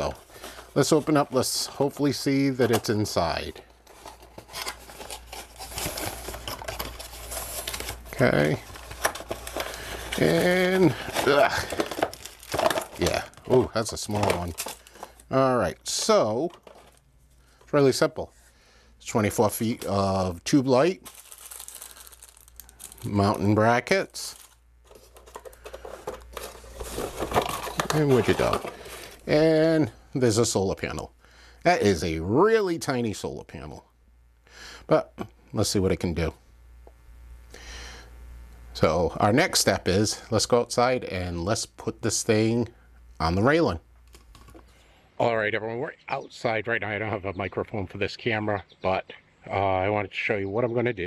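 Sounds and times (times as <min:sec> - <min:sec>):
plastic packaging crinkling: 0:00.0 - 0:17.1, 0:19.2 - 0:29.4.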